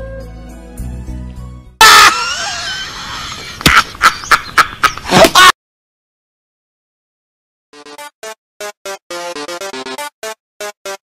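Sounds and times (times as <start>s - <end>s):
soft flute-like music: 0.0s - 1.2s.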